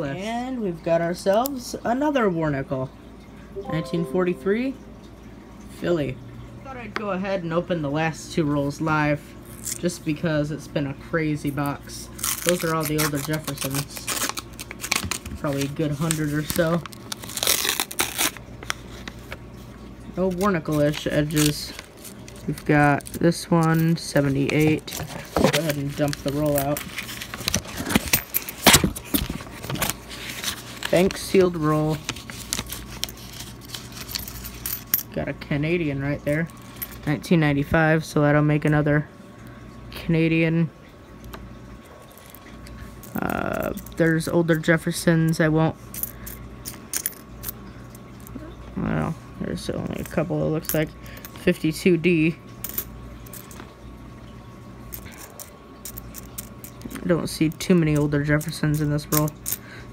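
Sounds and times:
low steady hum: 0.0 - 59.9
coins clinking: 32.6 - 35.1, 45.9 - 47.6, 54.9 - 57.0, 57.9 - 59.6
coins clicking together: 55.0 - 56.9, 58.4 - 59.6.

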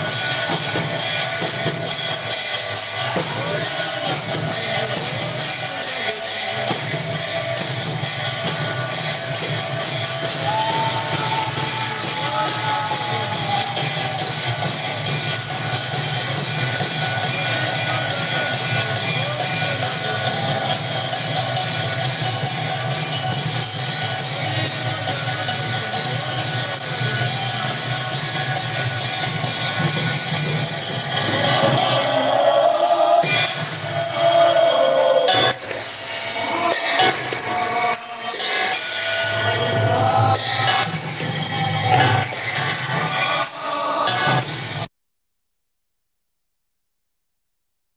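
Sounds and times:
drum playing: 0.0 - 38.8
faint voices singing: 0.0 - 44.9
hand cymbals jingling: 0.0 - 44.9.

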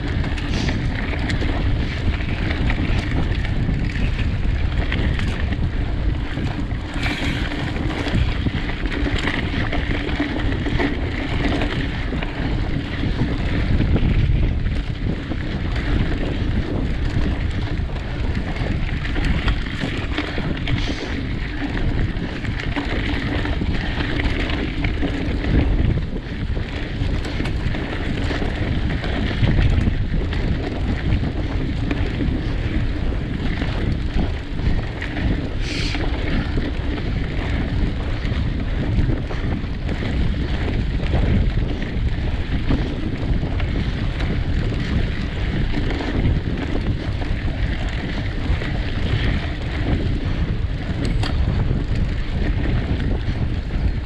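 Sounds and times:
bike rattling over bumps: 0.0 - 54.0
tyres rumbling on dirt trail: 0.0 - 54.0
wind buffeting microphone: 0.0 - 54.0.

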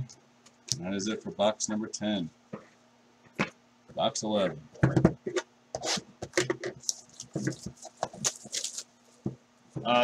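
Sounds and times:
cardboard rubbing: 6.7 - 8.9
packaging crinkling: 6.8 - 8.9.

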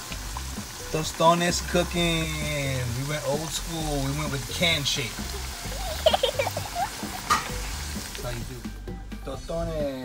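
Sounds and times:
plantain frying in hot oil: 0.0 - 10.0.

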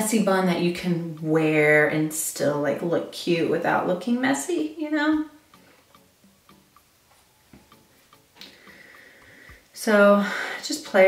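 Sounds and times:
faint short ticks: 7.7 - 9.7.

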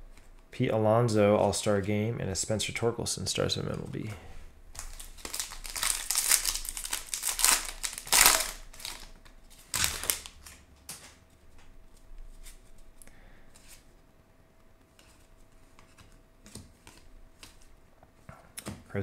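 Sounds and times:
sharp wrapper rip: 4.8 - 9.1, 9.7 - 10.3
foil wrapper crinkling and tearing: 4.8 - 10.6.

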